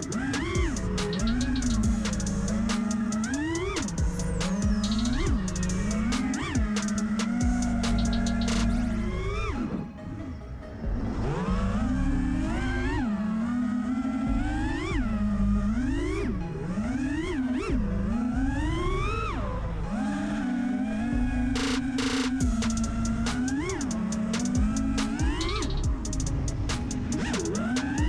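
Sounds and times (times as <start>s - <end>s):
electronic background music: 0.0s - 28.0s
quadcopter motors whining: 0.0s - 28.0s.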